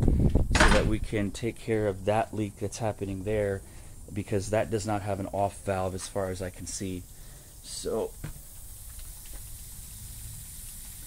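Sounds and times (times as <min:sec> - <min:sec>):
water spraying from pipe: 0:05.7 - 0:11.0.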